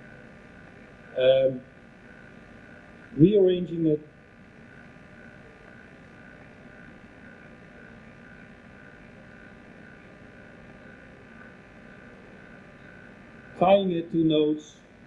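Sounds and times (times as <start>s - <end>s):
microphone hiss and hum: 0.0s - 15.0s.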